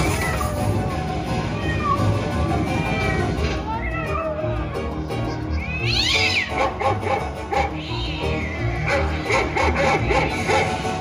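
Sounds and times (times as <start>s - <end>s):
cat meowing: 1.6s - 2.2s.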